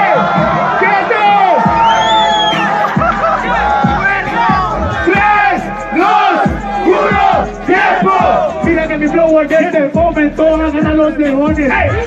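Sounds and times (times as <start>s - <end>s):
crowd of men shouting: 0.0s - 9.0s
hip-hop beat: 0.0s - 12.0s
deep bass kicks: 2.9s - 12.0s.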